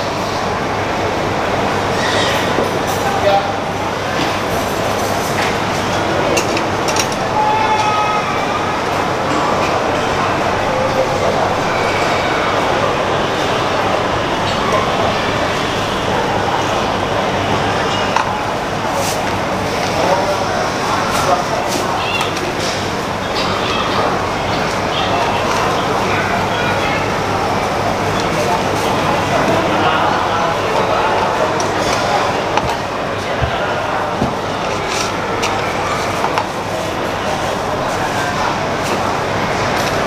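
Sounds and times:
background chatter: 0.0 - 40.0.

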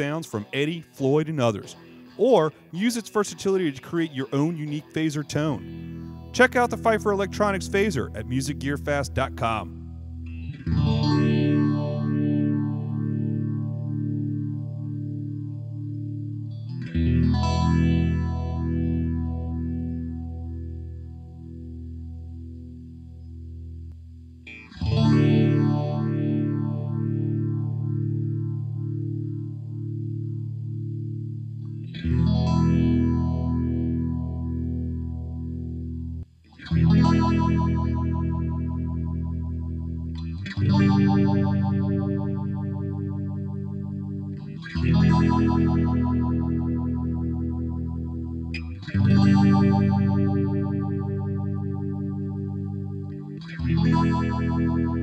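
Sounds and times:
electric guitar chords with phaser: 0.0 - 55.0.

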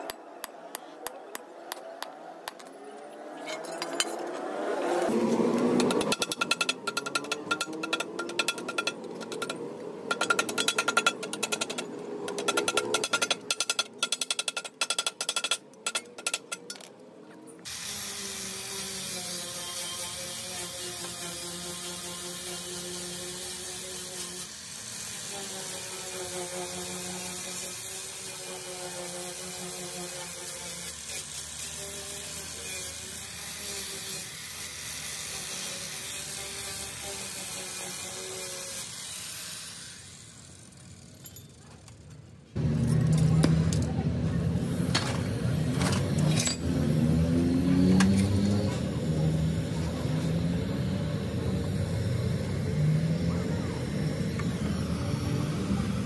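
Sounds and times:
angle grinder on metal: 3.5 - 16.7, 17.6 - 41.1, 44.5 - 56.0.

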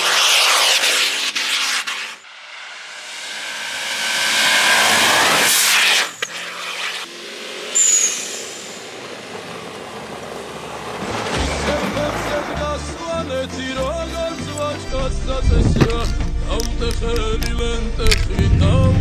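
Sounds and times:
car engine revving: 0.0 - 19.0
tyres churning through snow: 4.3 - 16.2
music with bass beat: 13.4 - 19.0.

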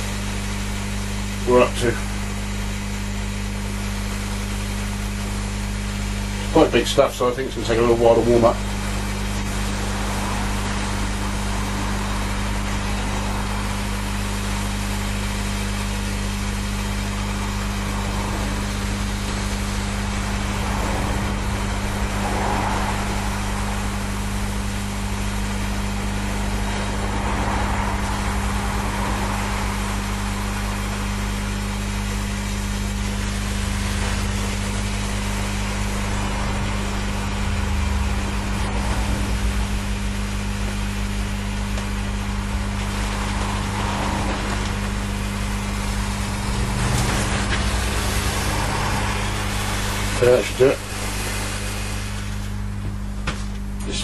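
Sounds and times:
heat tool hissing: 0.0 - 52.8
low even hum: 0.0 - 54.0.

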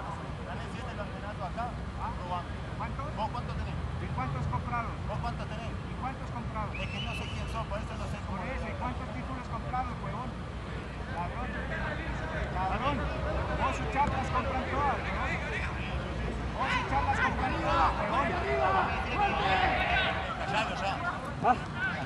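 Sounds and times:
distant men talking: 0.0 - 22.0.

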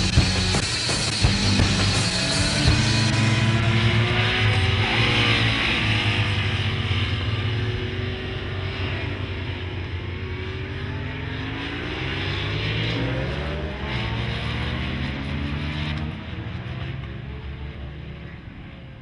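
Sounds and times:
racing motorcycle engine: 0.0 - 19.0.

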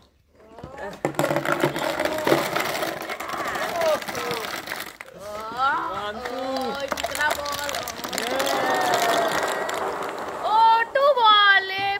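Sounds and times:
ping pong balls clattering: 0.8 - 5.0
people shouting: 8.0 - 11.5.

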